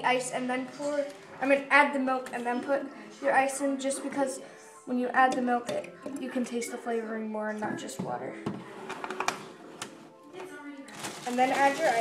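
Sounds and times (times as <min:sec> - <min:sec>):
television music: 0:00.0 - 0:12.0.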